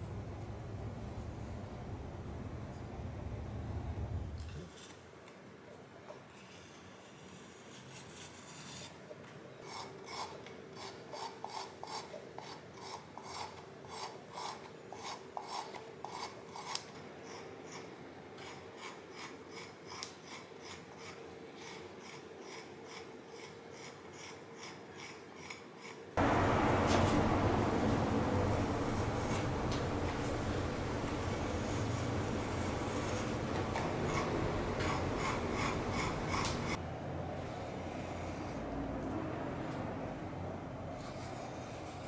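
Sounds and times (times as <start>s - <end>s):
loud steady noise: 26.2s - 36.8s
metal tool scraping clay bowl: 32.6s - 36.8s.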